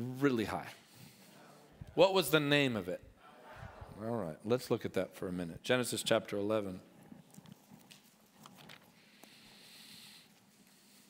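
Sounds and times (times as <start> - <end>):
pages rustling: 7.0 - 9.4.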